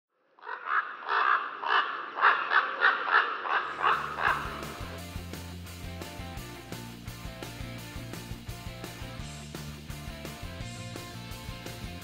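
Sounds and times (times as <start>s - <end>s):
bird calling: 0.4s - 5.0s
music with plucked notes: 3.9s - 12.0s.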